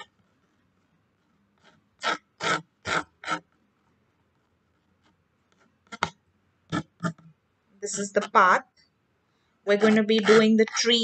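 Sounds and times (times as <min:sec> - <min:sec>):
pencil scratching on paper: 0:00.0 - 0:07.3, 0:09.7 - 0:11.0.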